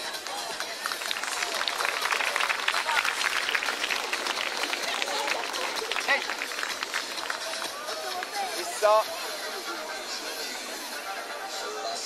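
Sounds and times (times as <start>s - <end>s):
crowd clapping: 0.0s - 8.7s
crowd chattering: 0.0s - 12.0s.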